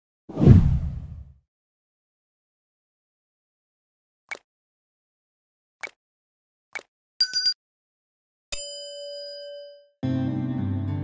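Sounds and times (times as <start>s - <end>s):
whoosh sound effect: 0.3s - 1.2s
low boom: 0.4s - 1.3s.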